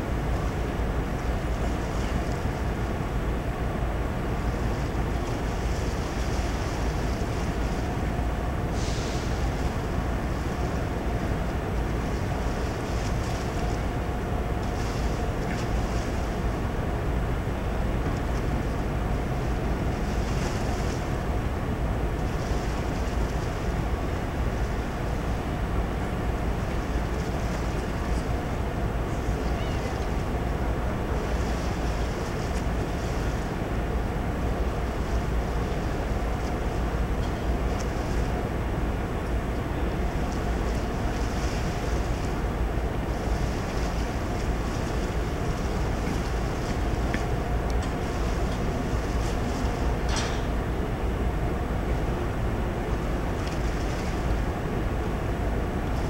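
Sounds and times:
ship machinery hum: 0.0s - 56.0s
wind rumble on microphone: 0.0s - 56.0s.

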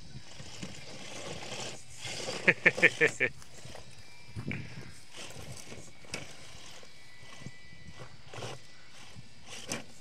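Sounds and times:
electric motor whine: 0.0s - 10.0s
tyres scraping against stone: 0.2s - 10.0s.

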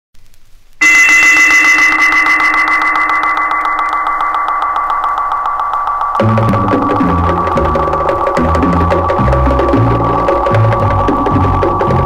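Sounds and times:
electronic drone with rapid pulse: 0.8s - 12.0s.

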